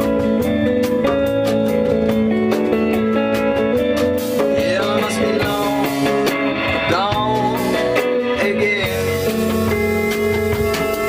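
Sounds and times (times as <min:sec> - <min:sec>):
electric bass: 0:00.0 - 0:11.0
electric guitar with bending notes: 0:00.0 - 0:11.0.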